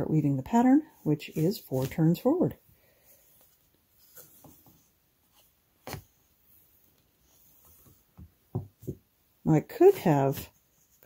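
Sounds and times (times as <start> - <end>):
shuttle rustling and scraping: 0.3 - 9.0.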